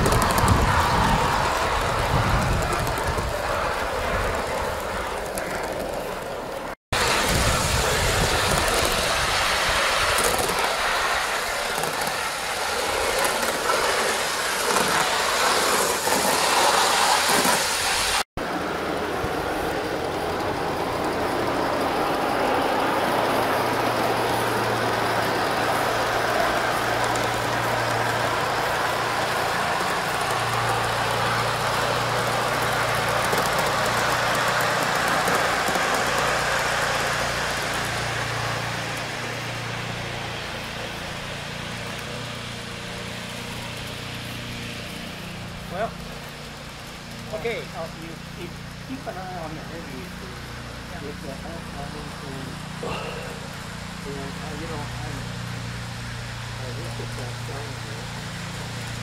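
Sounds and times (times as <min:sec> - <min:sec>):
steam locomotive hissing: 0:07.0 - 0:18.2, 0:19.0 - 0:59.0.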